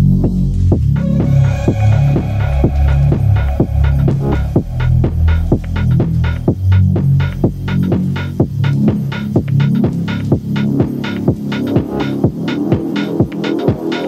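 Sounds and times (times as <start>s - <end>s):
house music track: 0.0s - 14.0s
throbbing synth bassline: 0.0s - 14.0s
kick drum: 1.7s - 13.9s.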